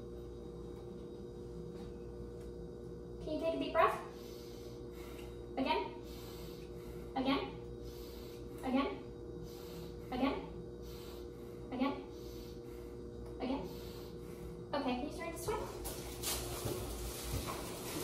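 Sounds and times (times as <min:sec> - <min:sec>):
low two-tone hum: 0:00.0 - 0:18.0
woman speaking short words: 0:14.7 - 0:15.8.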